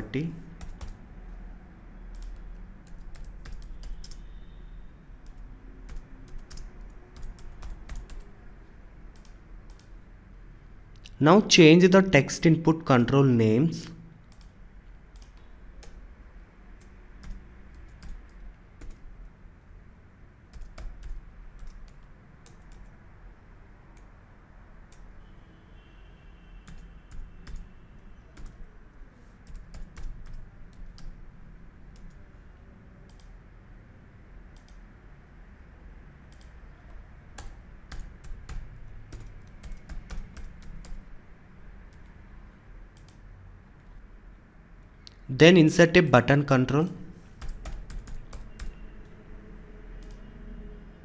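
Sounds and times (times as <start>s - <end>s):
keyboard typing clicks: 0.5s - 1.0s, 2.1s - 4.3s, 5.2s - 8.3s, 9.1s - 10.0s, 14.2s - 16.0s, 16.8s - 19.1s, 20.5s - 22.9s, 26.7s - 27.7s, 28.4s - 28.7s, 29.4s - 31.2s, 33.1s - 33.4s, 34.5s - 34.8s, 36.3s - 41.2s, 42.9s - 43.2s, 47.4s - 48.8s.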